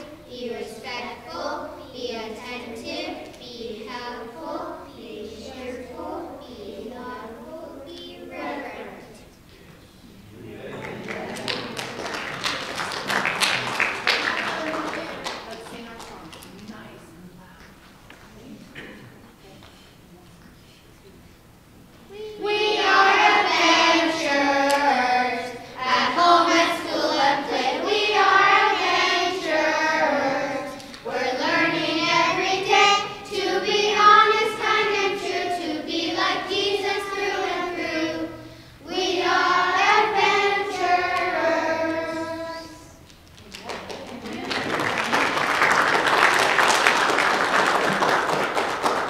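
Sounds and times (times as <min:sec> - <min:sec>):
children reciting in unison: 0:00.0 - 0:09.3, 0:22.1 - 0:43.0.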